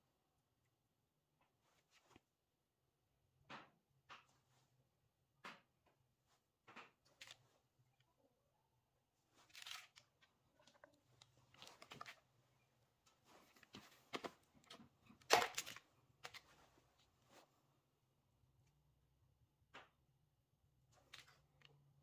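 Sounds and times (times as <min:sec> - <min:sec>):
paper rustling: 0:06.3 - 0:07.7, 0:09.2 - 0:17.6
pipe fittings scraping and clicking: 0:09.5 - 0:12.3.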